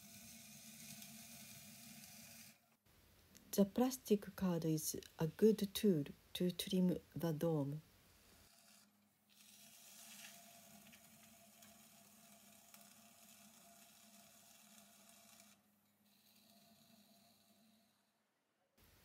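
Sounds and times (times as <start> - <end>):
plastic card scraping clay: 8.5 - 16.9.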